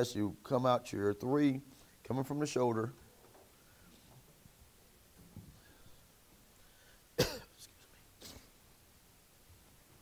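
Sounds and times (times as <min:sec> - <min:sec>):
person coughing: 0:07.2 - 0:07.6, 0:08.2 - 0:08.6.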